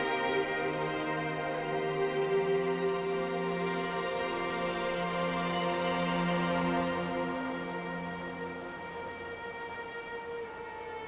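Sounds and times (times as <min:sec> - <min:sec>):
slow string music: 0:00.0 - 0:11.0.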